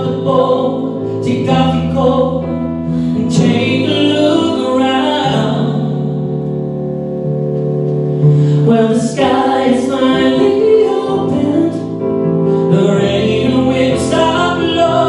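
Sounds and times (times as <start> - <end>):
man singing into a microphone: 0.0 - 6.2, 8.5 - 15.0
instrumental backing music: 0.0 - 15.0.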